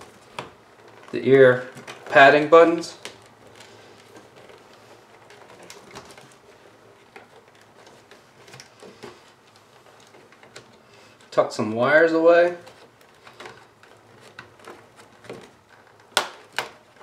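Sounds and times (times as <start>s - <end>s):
soft rustling of padding: 0.0s - 17.0s.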